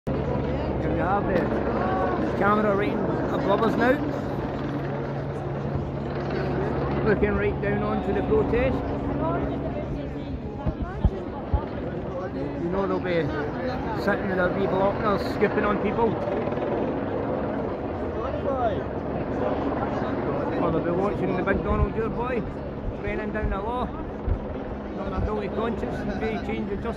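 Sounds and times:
helicopter rotor drone: 0.1 - 26.9
people talking in the street: 0.1 - 26.9.

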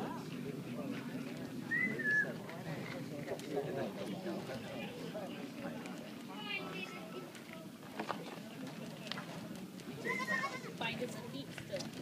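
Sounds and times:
goat kid bleating: 10.0 - 10.7.

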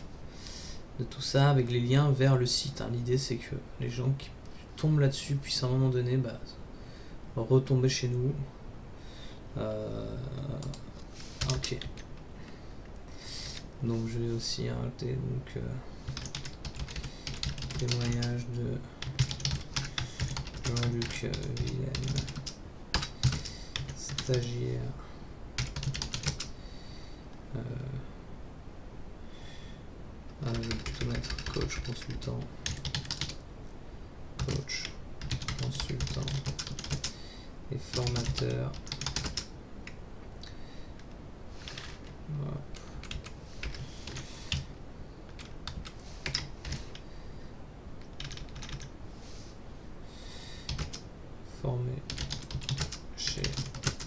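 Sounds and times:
computer keyboard typing: 10.6 - 10.8, 16.1 - 18.4, 19.0 - 24.5, 25.6 - 26.5, 30.5 - 33.4, 34.4 - 37.2, 37.9 - 39.5, 41.6 - 42.1, 42.8 - 44.7, 45.3 - 47.0, 48.1 - 48.9, 50.7 - 51.0, 52.1 - 54.0.

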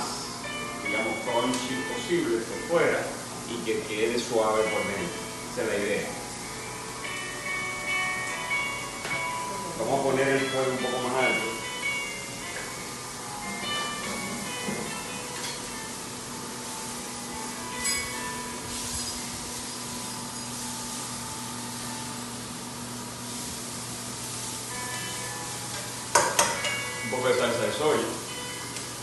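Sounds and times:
vegetables sizzling in a wok: 11.6 - 29.0.

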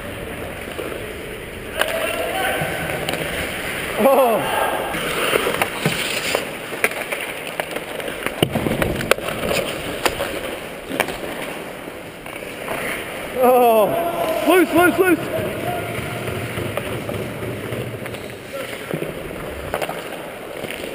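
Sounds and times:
sticks and puck clacking: 0.0 - 3.9, 4.9 - 13.4, 14.2 - 20.9
player shouting: 4.0 - 5.0, 13.4 - 16.2
skate blades scraping on ice: 4.9 - 13.3, 14.3 - 20.9.

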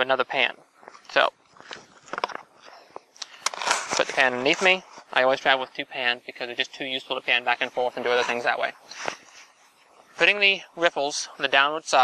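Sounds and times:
gravel scraping in plastic pans: 3.4 - 5.4.

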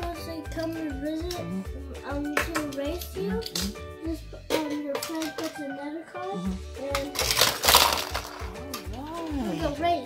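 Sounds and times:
background music: 0.0 - 10.0
toy cars clattering down plastic track: 4.6 - 5.6, 7.0 - 9.0.

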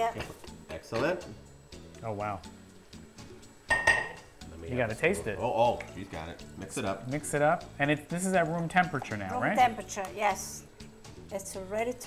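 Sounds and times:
dishware clinking: 3.7 - 4.2.

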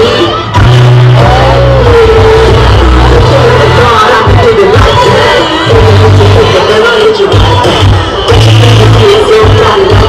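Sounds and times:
crowd: 0.0 - 10.0
loud amplified music: 0.0 - 10.0.

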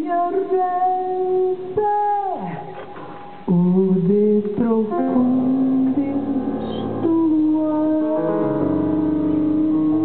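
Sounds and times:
woman singing long notes: 3.5 - 10.0.

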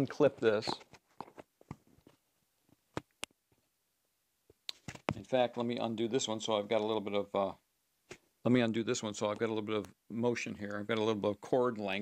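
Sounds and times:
microphone handling clicks and rubs: 0.0 - 3.7, 4.5 - 5.4.

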